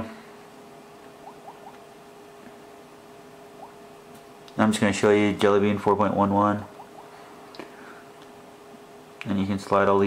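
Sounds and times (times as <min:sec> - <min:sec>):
steady faint hum: 0:00.0 - 0:10.0.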